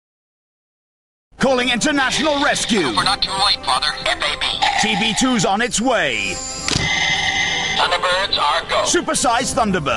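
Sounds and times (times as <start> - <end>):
high electronic tone: 2.0 - 8.7
warbling electronic sound: 4.6 - 5.5, 6.3 - 8.4.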